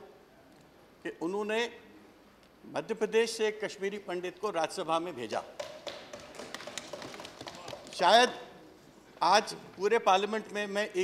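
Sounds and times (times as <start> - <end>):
people thumping desks: 5.5 - 8.0.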